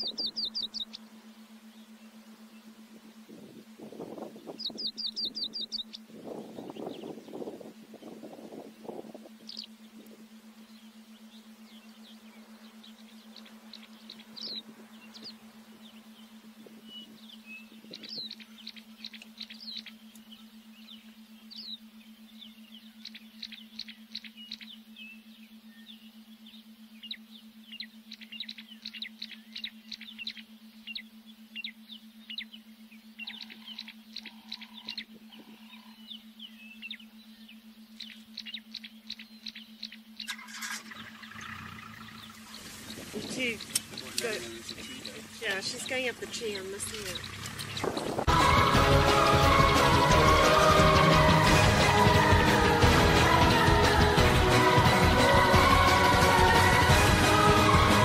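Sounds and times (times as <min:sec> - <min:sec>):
birds chirping: 0:00.0 - 0:58.0
steady low hum: 0:00.0 - 0:58.0.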